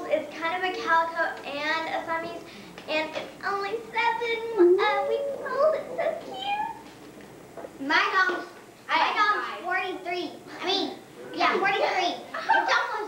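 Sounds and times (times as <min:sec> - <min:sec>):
children's voices: 0:00.0 - 0:06.9, 0:07.8 - 0:13.0.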